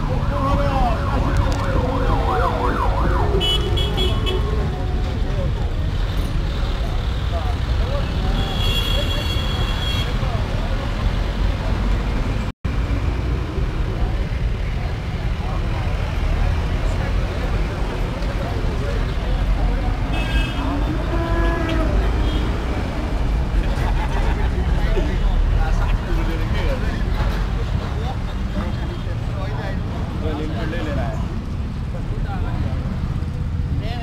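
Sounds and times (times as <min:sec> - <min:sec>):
motorcycles rumbling: 0:00.0 - 0:34.0.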